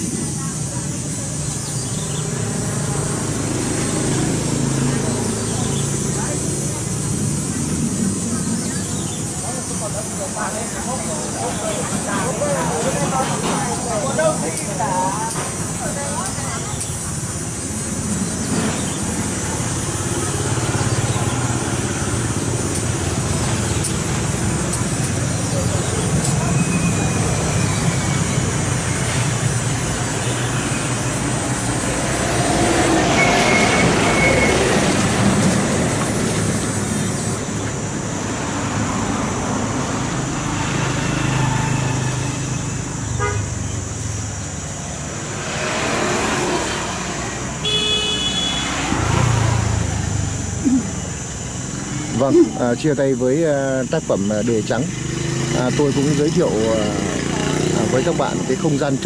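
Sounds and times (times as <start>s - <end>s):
road traffic noise: 0.0s - 59.0s
car horn toot: 43.2s - 43.6s, 47.6s - 48.8s.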